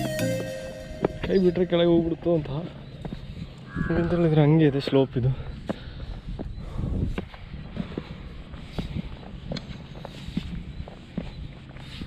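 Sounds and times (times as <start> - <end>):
footsteps on rock steps: 0.0 - 3.7, 5.4 - 12.0.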